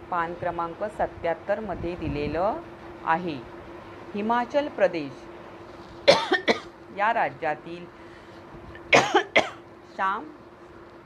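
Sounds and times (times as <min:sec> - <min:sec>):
woman coughing: 0:06.1 - 0:06.7, 0:08.9 - 0:09.6.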